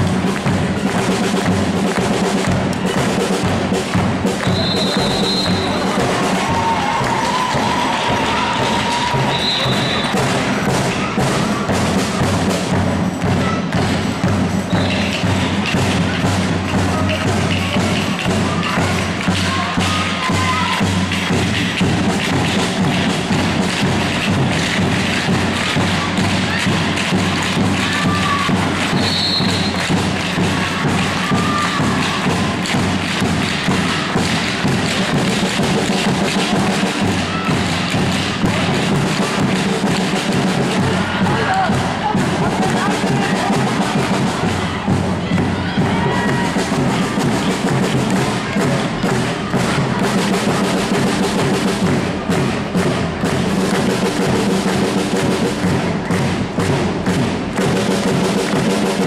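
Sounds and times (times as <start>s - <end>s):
music: 0.0s - 59.0s
voices: 24.0s - 51.6s.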